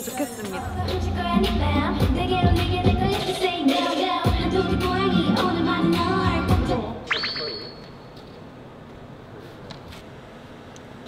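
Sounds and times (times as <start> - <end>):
electronic upward pitch sweep: 7.1 - 7.9.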